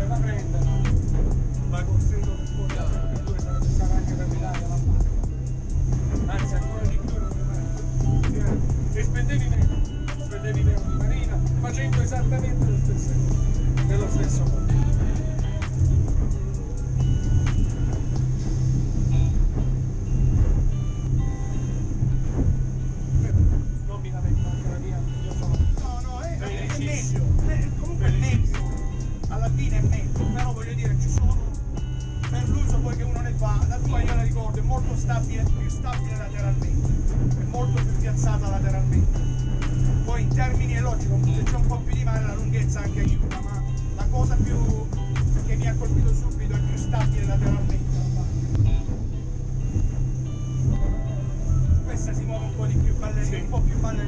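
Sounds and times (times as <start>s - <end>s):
boat engines droning: 0.0s - 54.0s
music with singing: 0.0s - 54.0s.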